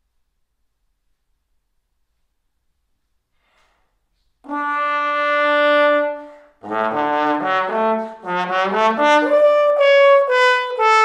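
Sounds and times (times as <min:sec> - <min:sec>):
faint breath: 0:03.3 - 0:04.0
solo trombone: 0:04.4 - 0:11.0.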